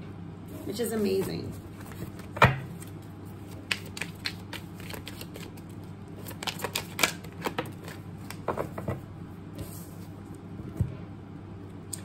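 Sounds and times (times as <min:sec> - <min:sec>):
cards being shuffled by hand: 0:01.1 - 0:08.9.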